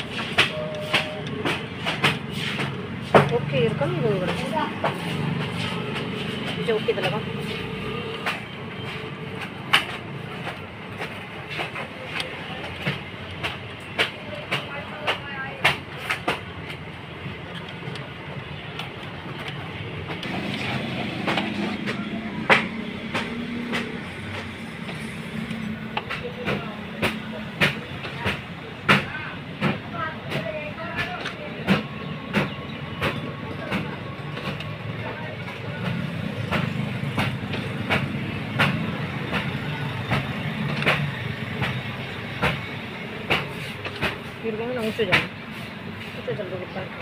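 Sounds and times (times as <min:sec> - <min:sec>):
paper feed clicks and clacks: 0:00.0 - 0:47.0
printer motor hum: 0:20.2 - 0:26.2.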